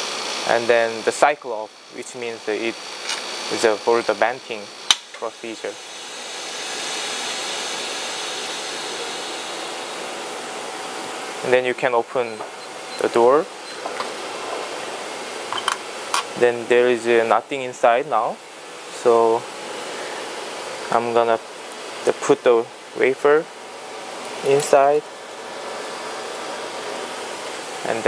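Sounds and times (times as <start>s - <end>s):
machinery hissing: 0.0s - 18.4s.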